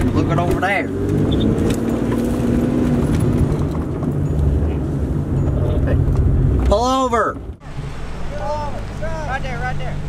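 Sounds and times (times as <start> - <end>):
car engine and road noise: 0.0 - 10.0
man calling out: 8.3 - 10.0.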